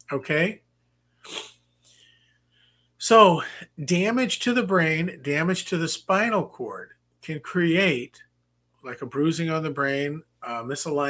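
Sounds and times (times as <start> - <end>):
faint mouth sounds: 1.2 - 2.0
man breathing in sharply: 1.2 - 3.0.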